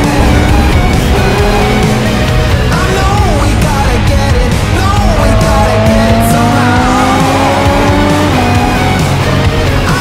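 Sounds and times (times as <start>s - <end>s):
background music: 0.0s - 10.0s
car engine accelerating hard: 0.0s - 10.0s.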